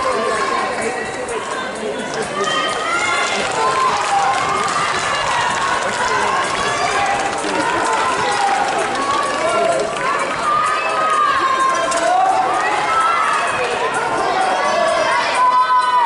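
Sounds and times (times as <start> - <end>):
crowd shouting: 0.0 - 16.0.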